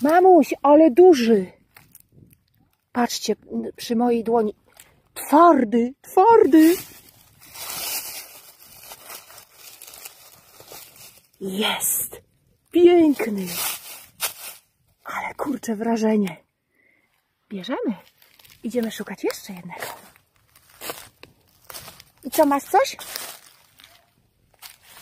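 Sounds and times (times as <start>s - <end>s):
dry leaves rustling and crackling: 6.4s - 12.0s, 12.6s - 14.8s, 17.9s - 25.0s.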